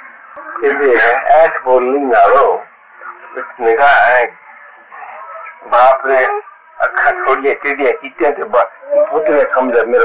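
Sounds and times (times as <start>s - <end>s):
man talking: 0.6s - 2.7s, 3.4s - 4.3s, 5.6s - 10.0s.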